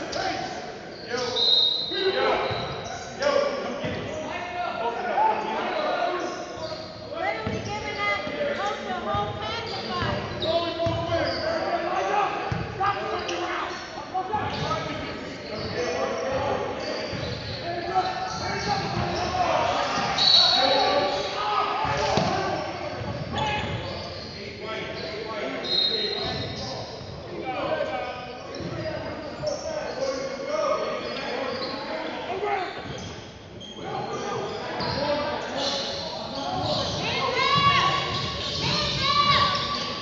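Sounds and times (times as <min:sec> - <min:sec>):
echoing voices: 0:00.0 - 0:40.0.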